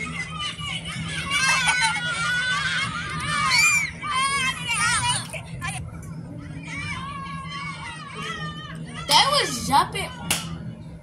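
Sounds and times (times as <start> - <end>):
children shouting: 0.0 - 5.8, 6.4 - 10.3.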